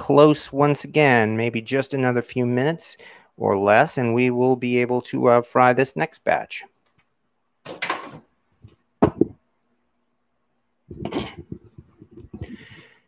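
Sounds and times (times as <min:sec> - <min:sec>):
faint steady hum: 0:00.0 - 0:13.0
microphone handling knocks: 0:08.6 - 0:09.4
microphone rubbing: 0:10.9 - 0:12.8.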